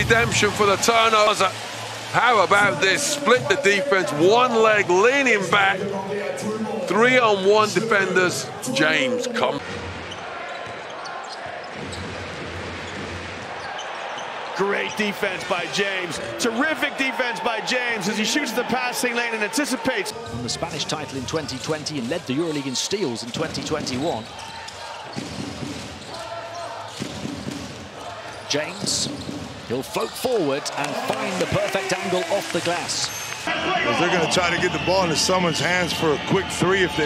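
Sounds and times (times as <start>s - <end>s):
arena crowd noise: 0.0s - 37.0s.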